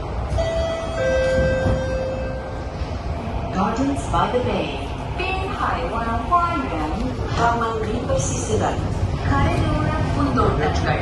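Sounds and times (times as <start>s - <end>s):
low rumble of train: 0.0s - 11.0s.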